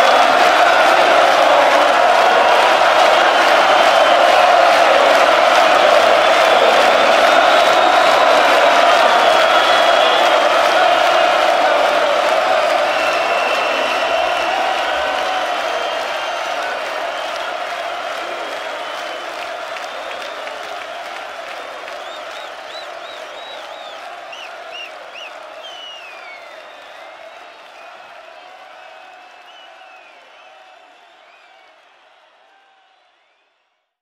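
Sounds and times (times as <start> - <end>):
stadium crowd cheering and applauding: 0.0 - 34.0
shrill rising and falling whistles: 6.2 - 11.3, 12.6 - 17.5, 22.0 - 28.0.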